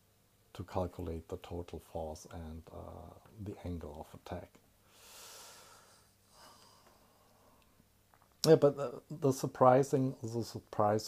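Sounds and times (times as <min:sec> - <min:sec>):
person breathing: 0:04.8 - 0:07.7.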